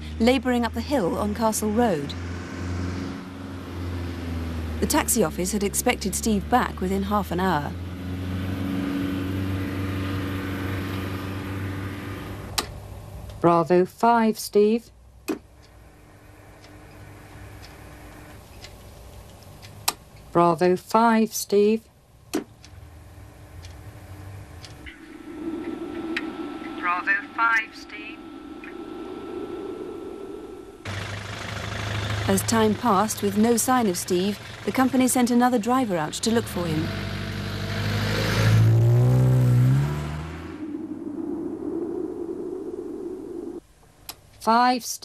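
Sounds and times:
car engine droning: 0.0s - 13.4s, 15.4s - 20.4s, 22.1s - 43.6s
low rumbling noise: 22.0s - 36.9s, 37.5s - 44.1s.

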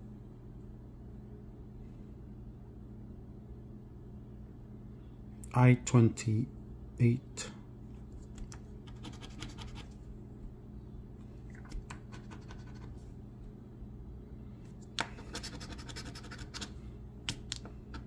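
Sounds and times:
scratching a scratch-off ticket: 8.4s - 10.0s, 11.9s - 13.0s, 15.0s - 16.8s.

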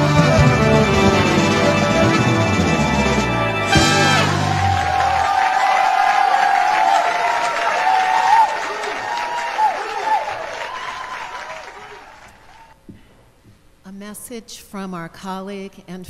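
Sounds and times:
audience applauding: 3.6s - 12.8s.

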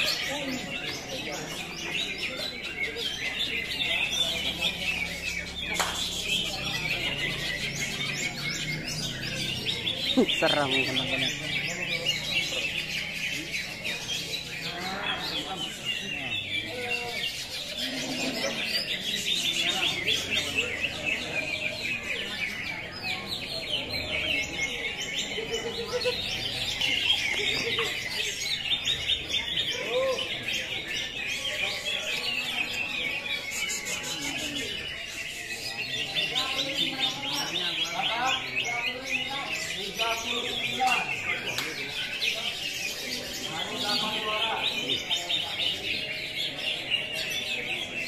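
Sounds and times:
birds chirping and trilling: 0.0s - 48.0s.

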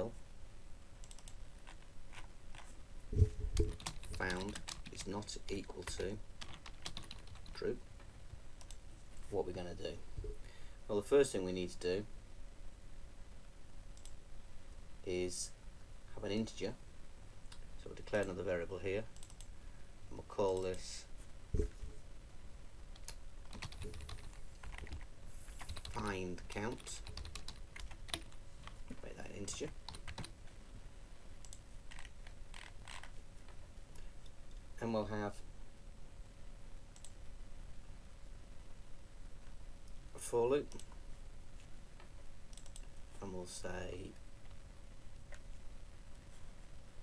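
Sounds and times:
low background hiss: 0.0s - 47.0s
computer mouse click: 1.0s - 1.4s, 19.2s - 19.5s, 31.4s - 33.1s, 37.0s - 37.2s, 42.5s - 42.9s
faint computer mouse clicks: 1.0s - 1.4s, 42.5s - 42.9s.

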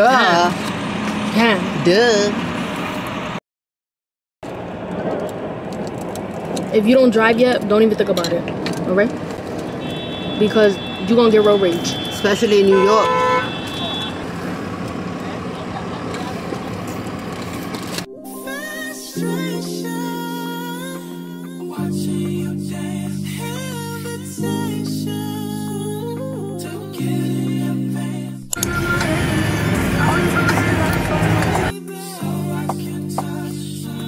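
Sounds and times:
traffic heard from inside car: 0.0s - 3.4s, 4.5s - 18.1s, 28.6s - 31.7s
background music: 18.1s - 34.0s
indistinct voices: 26.6s - 31.8s
low rumble: 28.5s - 31.7s.

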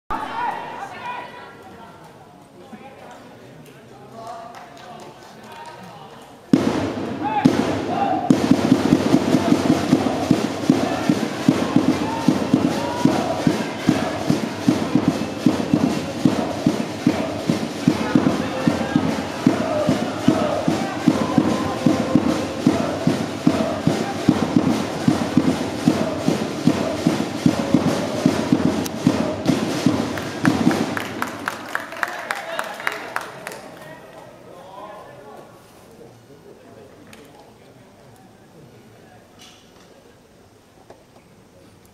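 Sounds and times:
fast steady drumbeat: 6.5s - 31.5s
supporters chanting in unison: 7.0s - 31.0s.

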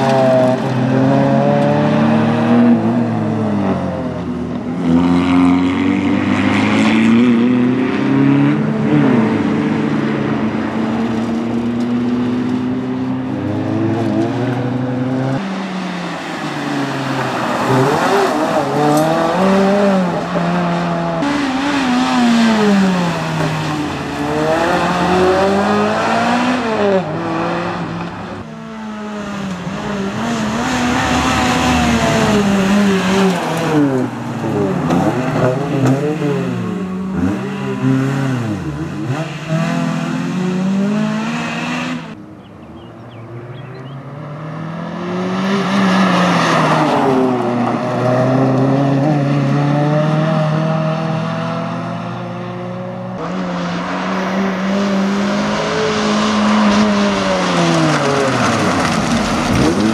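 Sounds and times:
car engine revving: 0.0s - 42.2s, 43.6s - 59.9s.

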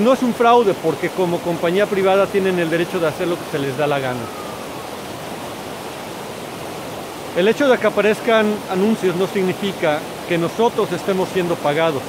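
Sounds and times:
stream rushing over rapids: 0.0s - 12.0s.

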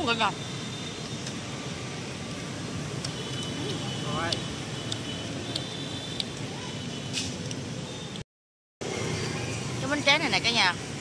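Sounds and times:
steady background noise: 0.0s - 8.2s.

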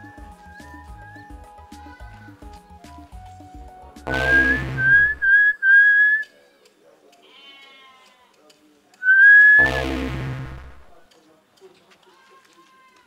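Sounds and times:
low bass thuds of music: 0.0s - 5.3s, 9.6s - 10.9s
whistling in rising notes: 4.1s - 6.2s, 9.0s - 9.7s.

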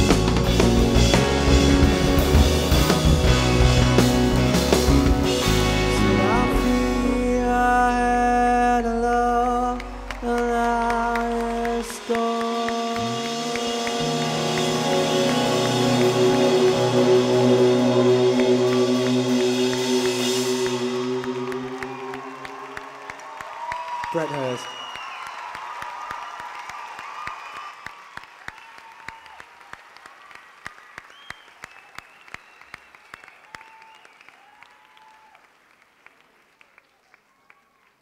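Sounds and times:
live band playing gentle song: 0.0s - 8.0s, 9.8s - 23.4s
deep bass note: 12.9s - 23.5s.

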